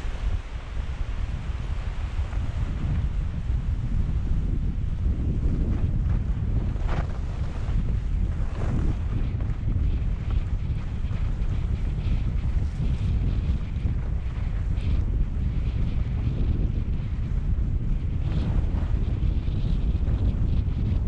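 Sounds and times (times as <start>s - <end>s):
wind rumbling on microphone: 0.0s - 21.0s
skis sliding on snow: 6.2s - 14.8s.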